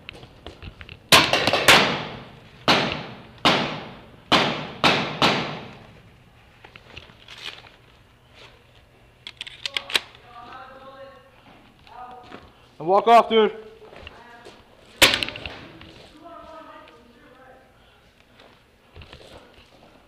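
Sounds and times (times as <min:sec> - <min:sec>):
paintball marker shots echoing: 0:01.1 - 0:05.9, 0:15.0 - 0:15.8.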